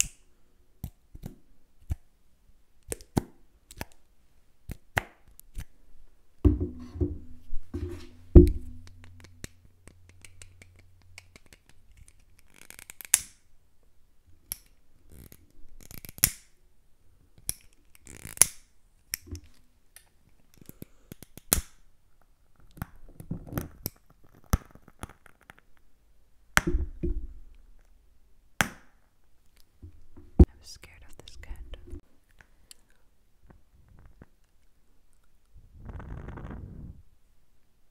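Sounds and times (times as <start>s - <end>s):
glass jar taps: 6.5s - 9.1s.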